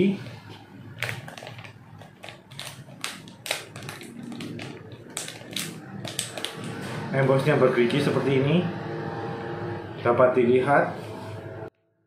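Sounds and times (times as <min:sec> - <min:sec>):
plastic bag crinkling: 0:00.8 - 0:06.8.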